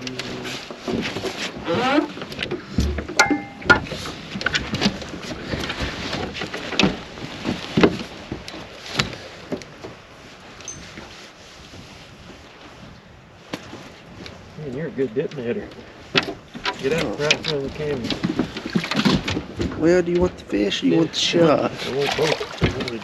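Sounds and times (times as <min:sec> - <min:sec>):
sharp knocks and clicks in boat: 0:00.0 - 0:12.0, 0:15.3 - 0:20.5, 0:22.0 - 0:23.0.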